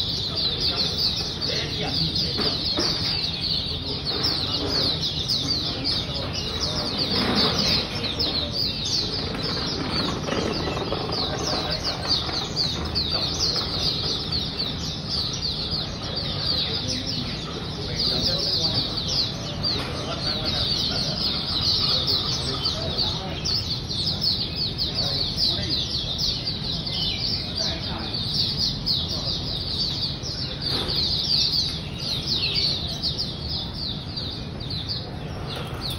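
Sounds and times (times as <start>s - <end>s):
birds chirping and twittering: 0.0s - 35.9s.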